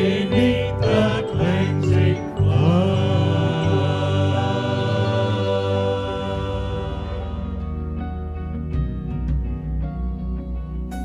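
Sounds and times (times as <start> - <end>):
gospel vocal group singing: 0.0 - 8.3.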